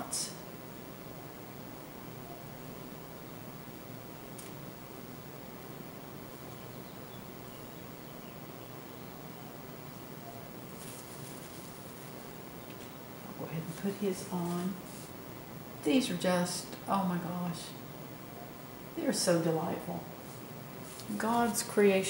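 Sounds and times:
room hiss: 0.0 - 22.0
paint brush scratching canvas: 10.7 - 12.3, 13.7 - 15.2, 20.2 - 21.6.

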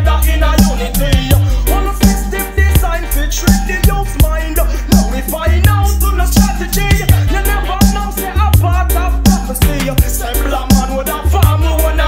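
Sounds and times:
heavy bassline: 0.0 - 12.0
person singing: 0.0 - 12.0
steady drum beat: 0.0 - 12.0.

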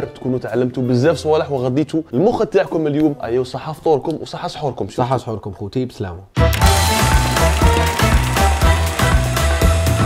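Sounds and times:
music with drum beat and heavy bass: 6.6 - 10.0.

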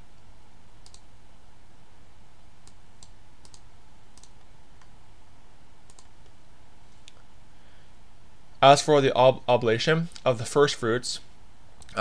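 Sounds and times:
low room hum: 0.0 - 12.0
computer mouse clicks: 0.8 - 1.1, 2.6 - 4.9, 5.8 - 6.4.

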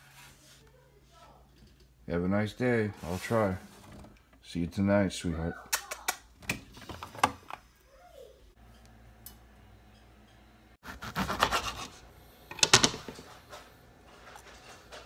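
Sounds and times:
rubbing and scraping: 2.9 - 4.2.

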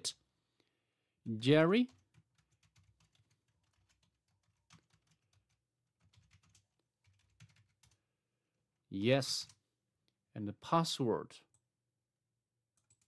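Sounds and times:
faint keyboard typing: 1.8 - 8.0, 9.4 - 9.6, 12.7 - 13.0.

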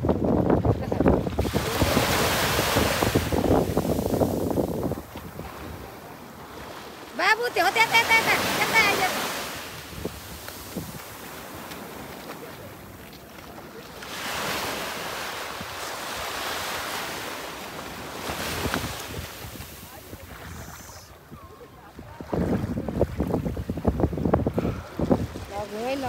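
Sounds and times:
wind on microphone: 0.0 - 6.8, 7.4 - 26.0
ocean surf washing: 0.0 - 26.0.

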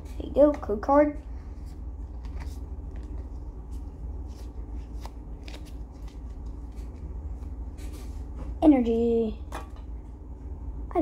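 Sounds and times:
steady low hum: 0.0 - 11.0
cards flicking and sliding: 1.6 - 7.5.

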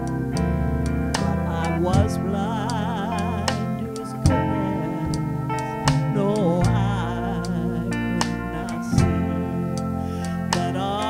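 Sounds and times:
live band playing soul-blues: 0.0 - 11.0.

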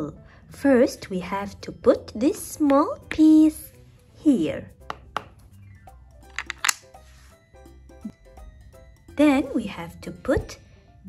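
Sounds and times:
soft background music: 0.0 - 11.0
wooden puzzle pieces clacking: 6.3 - 6.9.

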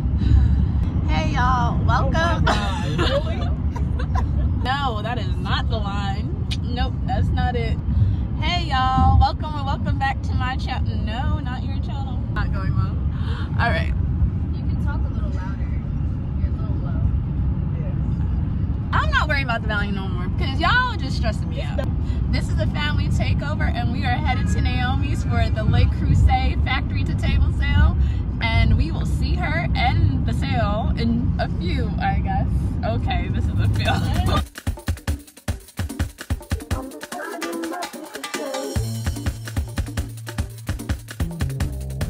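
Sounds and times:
car road noise rumble: 0.0 - 34.5, 38.8 - 42.0
voices talking: 1.1 - 7.8, 18.9 - 34.4, 36.5 - 38.8.

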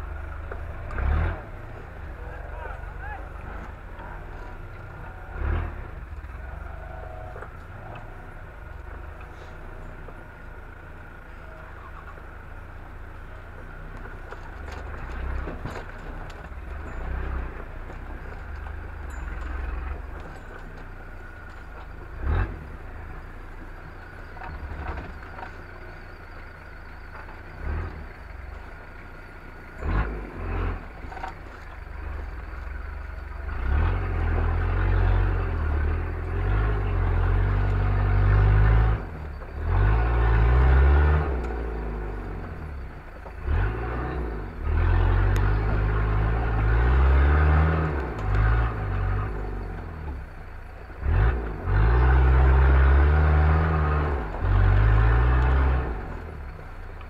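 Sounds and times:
off-road engine revving: 0.0 - 57.0
vehicle knocks and clatter: 11.7 - 22.3, 23.0 - 30.0.

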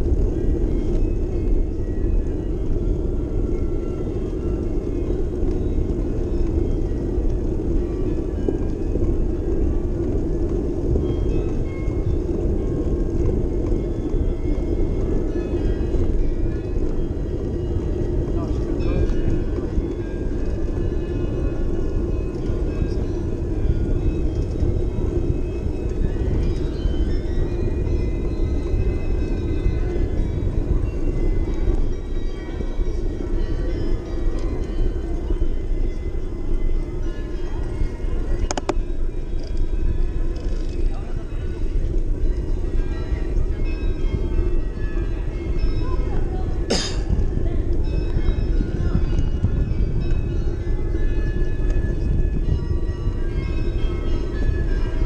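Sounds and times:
bicycle rolling noise: 0.0 - 55.0
faint music: 0.0 - 55.0
wind rumble: 0.0 - 55.0.

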